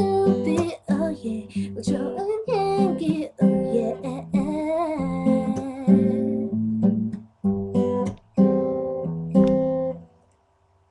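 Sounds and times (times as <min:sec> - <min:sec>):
woman singing: 0:00.0 - 0:06.6
acoustic guitar: 0:00.0 - 0:10.4.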